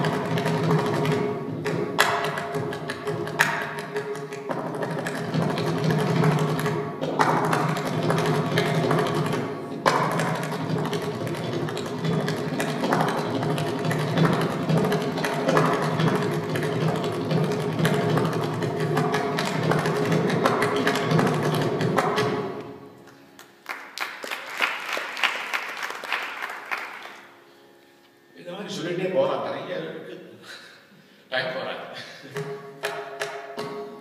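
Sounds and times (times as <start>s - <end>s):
hand drum fast strokes: 0.0s - 22.6s.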